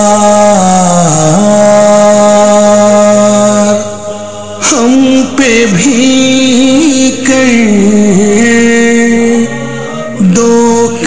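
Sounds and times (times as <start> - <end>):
man singing long lament note: 0.0 - 11.0.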